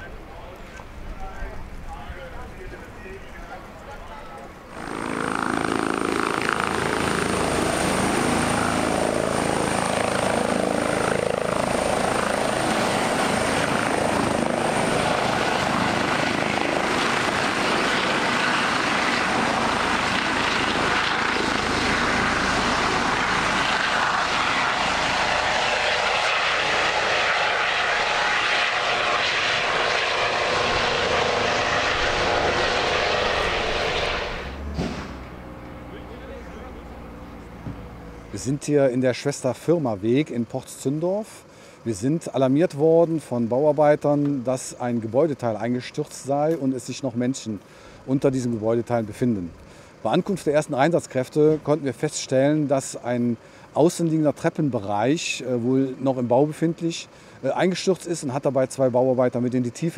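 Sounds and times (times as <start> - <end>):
helicopter turbines and rotors: 0.0 - 59.9.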